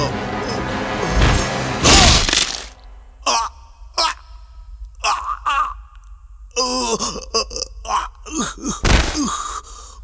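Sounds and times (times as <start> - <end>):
man crying out in pain: 3.2 - 9.8.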